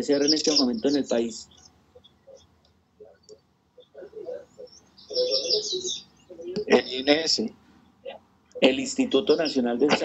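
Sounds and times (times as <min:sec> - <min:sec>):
bird chirping trill: 0:00.0 - 0:07.1.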